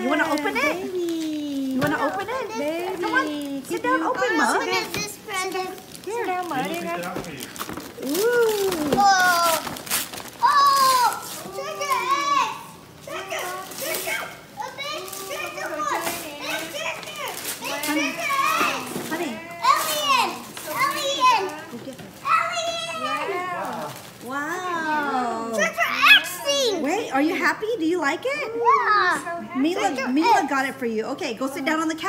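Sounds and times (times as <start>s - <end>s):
children chattering excitedly: 0.0s - 6.4s, 10.4s - 24.0s, 24.7s - 27.3s, 28.3s - 30.8s
tissue paper rustling: 0.0s - 26.7s.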